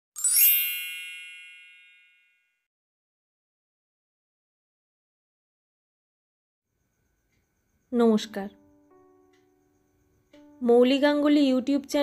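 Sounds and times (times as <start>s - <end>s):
bright high chime: 0.2s - 2.7s.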